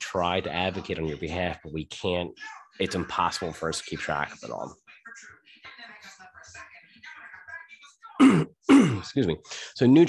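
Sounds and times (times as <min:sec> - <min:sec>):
man clearing his throat: 0:08.2 - 0:09.2.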